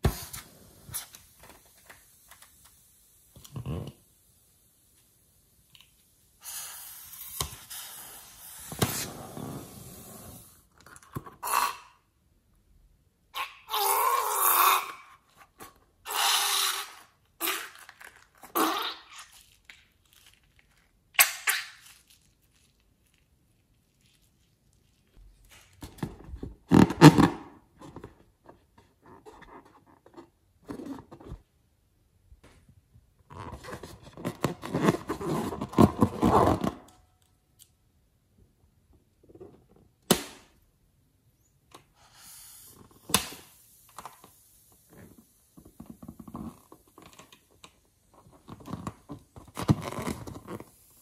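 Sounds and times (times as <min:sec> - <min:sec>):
rubber balloon rubbing: 0:06.6 - 0:10.6, 0:26.6 - 0:27.6, 0:33.3 - 0:36.8, 0:48.2 - 0:51.0.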